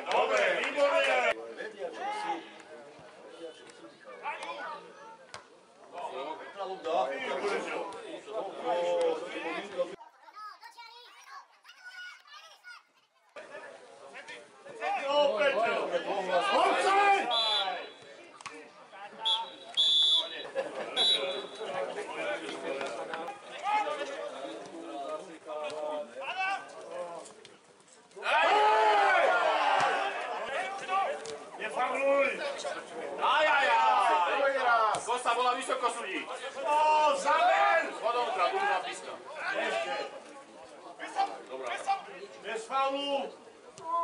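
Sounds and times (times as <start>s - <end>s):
men talking and calling out: 13.4s - 44.0s
players shouting: 14.8s - 18.2s, 28.2s - 40.3s
referee whistle blasts: 17.2s - 18.0s, 19.2s - 20.4s, 21.0s - 21.5s.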